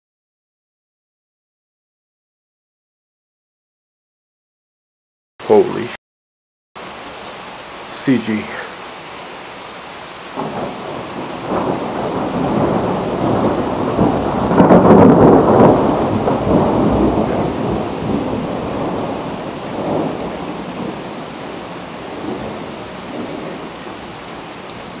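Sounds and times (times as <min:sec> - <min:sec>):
steady rain: 0:05.4 - 0:06.0, 0:06.8 - 0:25.0
thunder cracking and rolling: 0:10.4 - 0:25.0.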